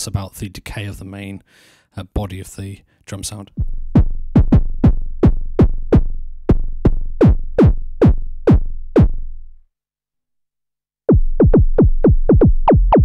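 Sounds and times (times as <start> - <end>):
synthesized kick drum hits: 3.6 - 9.3, 11.1 - 13.0.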